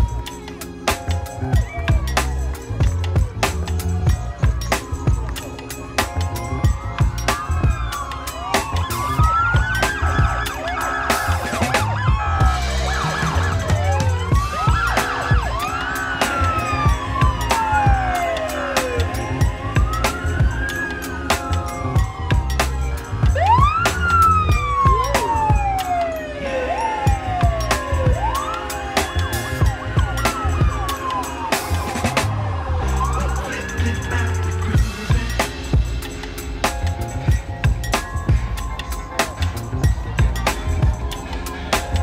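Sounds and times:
music with heavy bass beat: 0:00.0 - 0:42.0
police sirens wailing: 0:00.0 - 0:42.0.

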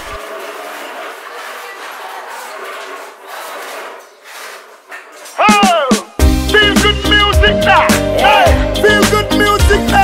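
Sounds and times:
many voices murmuring: 0:00.2 - 0:03.9.

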